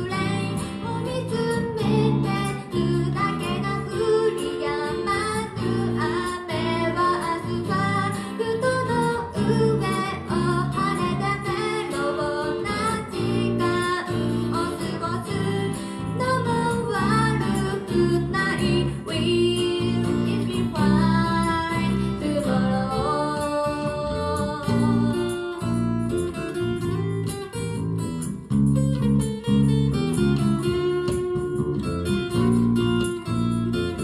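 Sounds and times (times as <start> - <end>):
woman singing: 0.0 - 26.2
acoustic guitar: 0.0 - 34.0.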